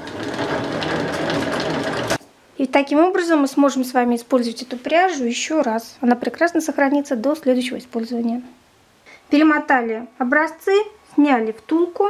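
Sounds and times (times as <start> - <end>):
yarn winder whirring rattle: 0.0 - 2.2.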